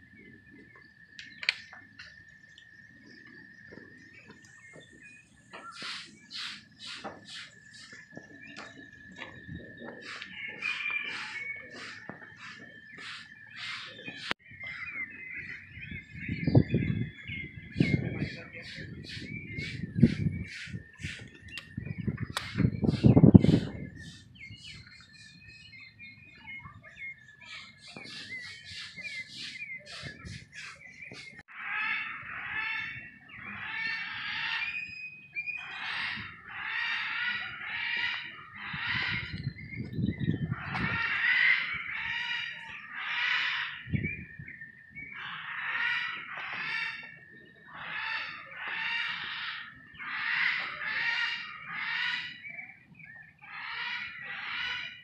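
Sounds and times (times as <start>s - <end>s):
bird chirps: 0.0s - 55.0s
rough bird calls: 0.0s - 55.0s.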